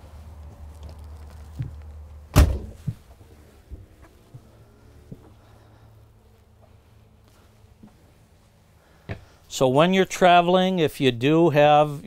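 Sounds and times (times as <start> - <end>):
door shutting thunk: 2.3 - 2.8.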